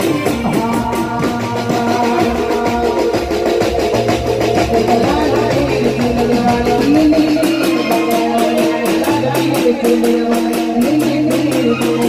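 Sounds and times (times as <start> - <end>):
drums beating: 0.0 - 12.0
keyboard melody: 0.0 - 12.0.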